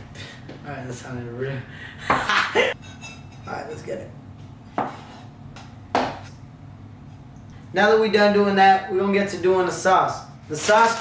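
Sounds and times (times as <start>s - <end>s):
knife chopping on wooden board: 4.7s - 6.3s.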